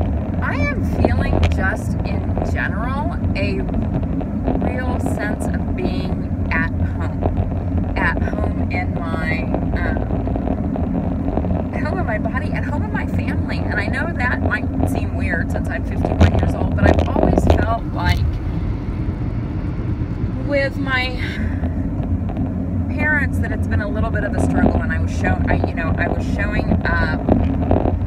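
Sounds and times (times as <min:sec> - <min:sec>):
car road and engine rumble: 0:00.0 - 0:28.0
woman talking: 0:00.4 - 0:03.8, 0:04.6 - 0:07.2, 0:08.0 - 0:10.1, 0:11.7 - 0:18.4, 0:20.4 - 0:21.7, 0:22.9 - 0:27.3.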